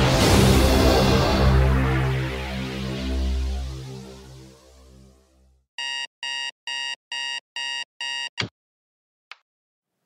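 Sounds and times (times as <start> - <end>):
alarm clock beeping: 5.8 - 8.4.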